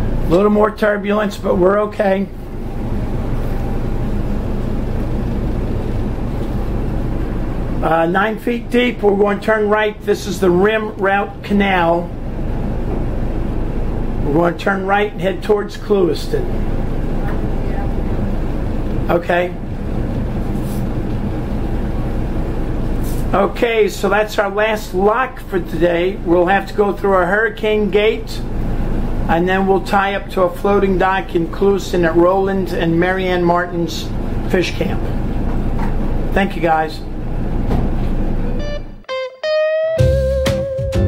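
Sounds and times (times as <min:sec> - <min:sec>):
plucked guitar note: 0:38.5 - 0:41.0.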